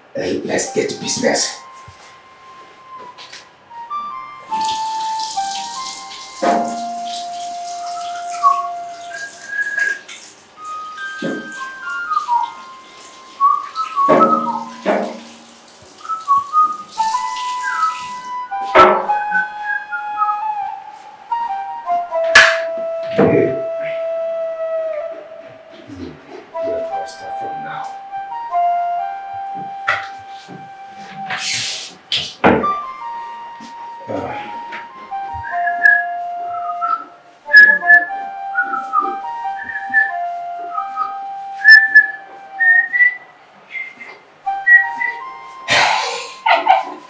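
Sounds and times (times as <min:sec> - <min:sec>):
quiet scattered sounds: 0:00.0 - 0:47.0
flute-like long note: 0:00.7 - 0:46.4.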